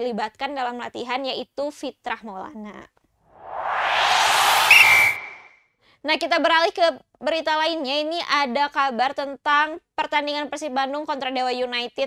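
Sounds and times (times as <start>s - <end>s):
whoosh: 3.3s - 5.5s
short high ping: 3.8s - 5.5s.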